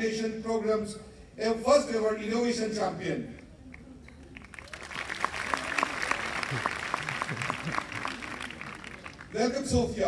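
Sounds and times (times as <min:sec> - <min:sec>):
audience applauding: 0:04.2 - 0:09.4.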